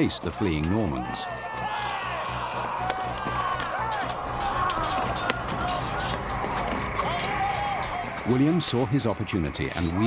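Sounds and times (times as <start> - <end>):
background music: 0.0 - 10.0
men shouting and yelling: 0.0 - 10.0.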